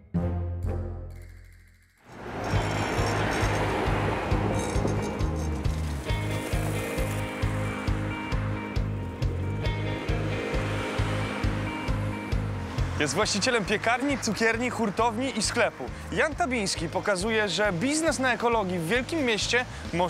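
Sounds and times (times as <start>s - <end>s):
background music with bass beat: 2.5s - 13.4s.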